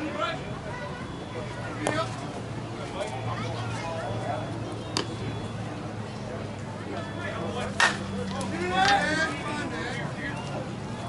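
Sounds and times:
bat cracking ball: 7.7 - 8.1.

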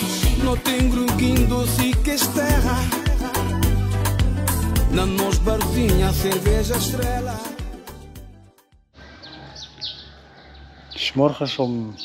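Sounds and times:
small birds chirping: 9.0 - 12.0.

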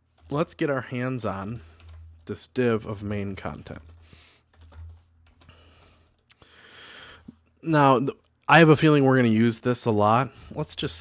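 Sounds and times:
computer keyboard typing: 1.5 - 2.4, 3.0 - 5.6.

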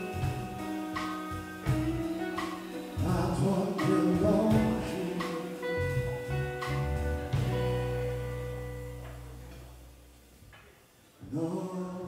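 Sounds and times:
blues band playing: 0.0 - 9.9
held chord with bass note: 5.8 - 9.8.

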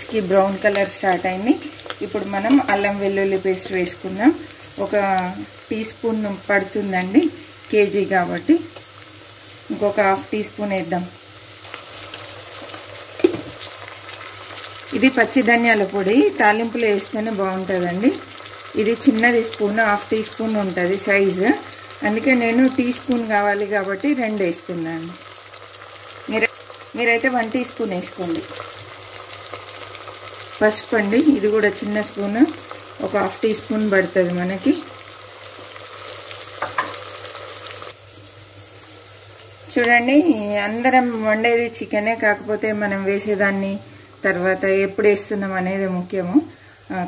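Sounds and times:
onions sizzling in hot oil: 0.0 - 47.0.

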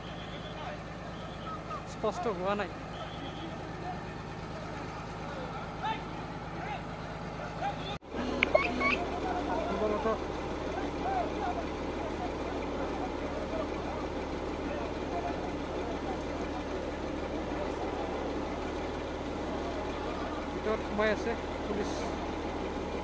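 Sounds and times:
heavy engine running: 0.0 - 23.0
crowd voices: 2.7 - 23.0.

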